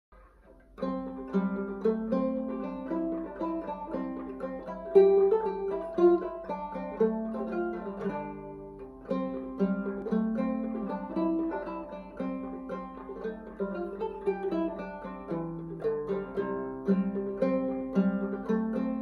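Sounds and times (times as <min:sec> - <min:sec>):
banjo quick plucked notes: 0:00.2 - 0:19.0.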